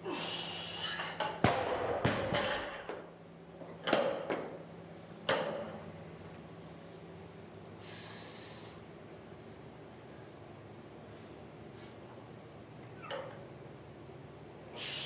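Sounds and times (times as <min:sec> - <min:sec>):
barbell dropped on platform: 0:01.3 - 0:03.0.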